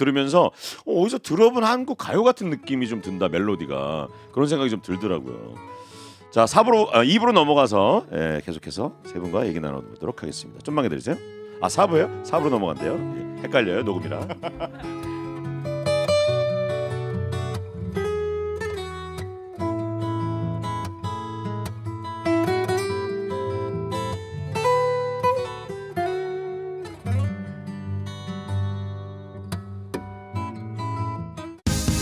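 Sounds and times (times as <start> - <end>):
acoustic guitar music: 1.3 - 32.0.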